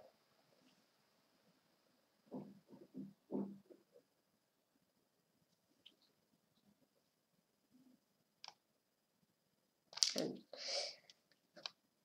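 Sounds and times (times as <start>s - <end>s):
computer mouse clicks: 8.4s - 8.6s.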